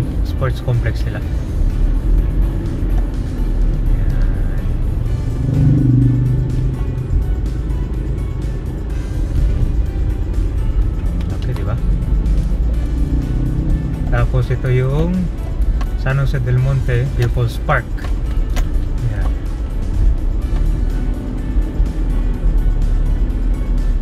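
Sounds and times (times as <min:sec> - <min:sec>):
car engine and tyres rumbling: 0:00.0 - 0:24.0.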